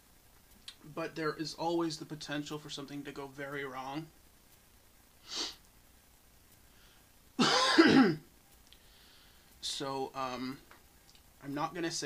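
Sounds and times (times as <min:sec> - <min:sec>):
sharp breath in: 0:05.2 - 0:05.6
man coughing: 0:07.4 - 0:08.3.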